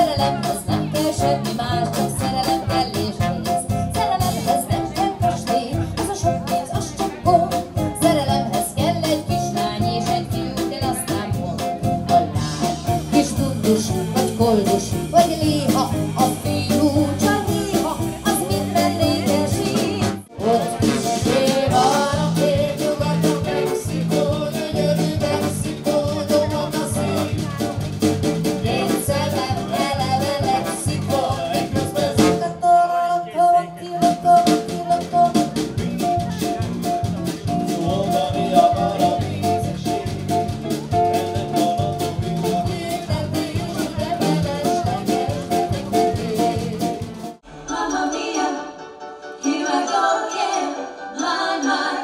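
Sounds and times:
woman singing: 0.0s - 27.6s, 28.6s - 35.6s, 42.4s - 48.8s
small band playing: 0.0s - 52.0s.

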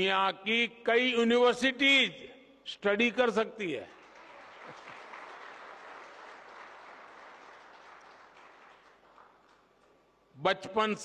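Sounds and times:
distant audience applauding: 4.0s - 9.7s.

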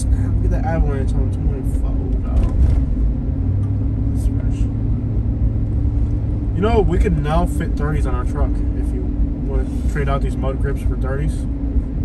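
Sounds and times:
engine and tyre drone in cabin: 0.0s - 12.0s.

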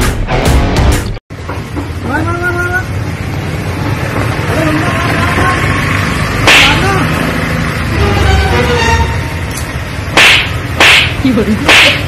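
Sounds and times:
sharp short cracks: 6.4s - 6.9s, 9.5s - 12.0s.

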